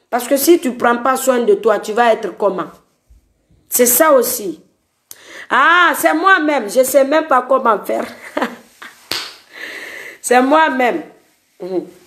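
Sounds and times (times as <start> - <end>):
woman laughing: 7.9 - 9.8.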